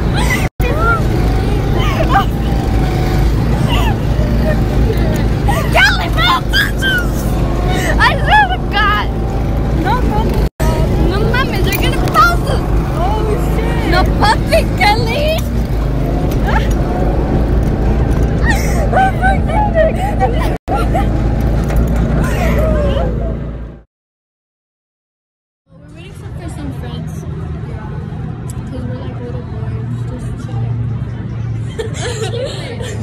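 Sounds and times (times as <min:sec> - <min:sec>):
go-kart motor rumbling: 0:00.0 - 0:23.8
excited voices calling out: 0:00.1 - 0:09.2.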